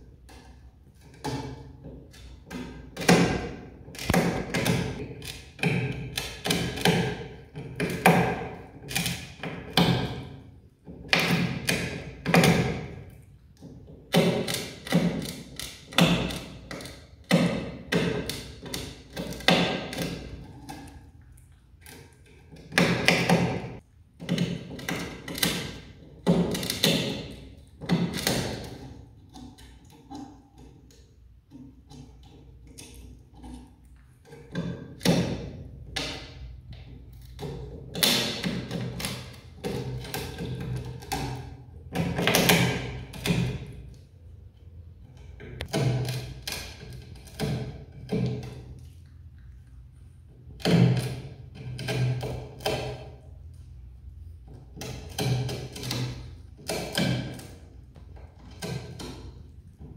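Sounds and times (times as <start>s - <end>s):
animal gnawing wood: 0.2s - 44.0s, 45.0s - 59.9s.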